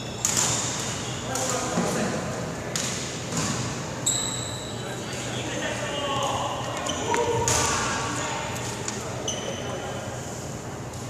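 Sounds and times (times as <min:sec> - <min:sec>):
court shoes squeaking on wood: 0:00.0 - 0:01.3, 0:04.0 - 0:04.8, 0:06.6 - 0:07.7, 0:09.1 - 0:09.9.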